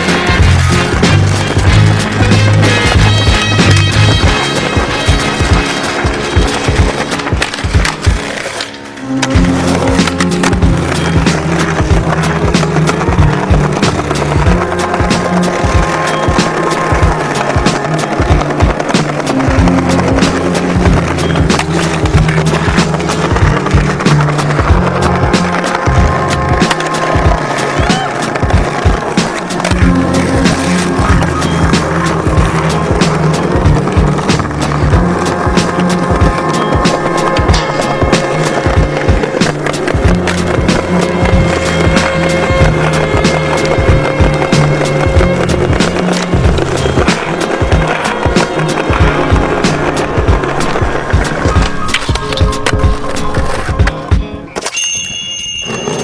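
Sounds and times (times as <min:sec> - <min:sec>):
music with steady beat and bass: 0:00.0 - 0:08.5, 0:09.2 - 0:54.6
skateboard wheels rolling on pavement: 0:00.0 - 0:56.0
skateboards popping and landing: 0:00.0 - 0:56.0.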